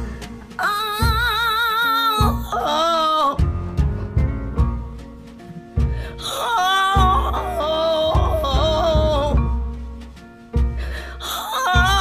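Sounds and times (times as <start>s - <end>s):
sparse instrumental backing: 0.0s - 12.0s
woman wailing wordless vocal: 0.6s - 3.4s, 6.2s - 9.5s, 11.2s - 12.0s.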